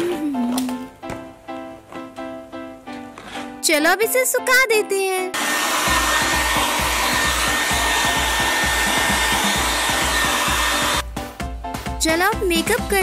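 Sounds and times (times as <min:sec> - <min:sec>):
hair dryer running: 0:05.4 - 0:11.1.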